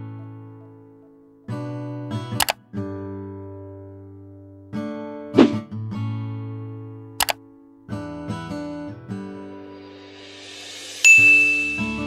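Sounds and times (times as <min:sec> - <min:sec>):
short rising whoosh: 0:05.4 - 0:05.6
bright bell ding: 0:11.0 - 0:12.0.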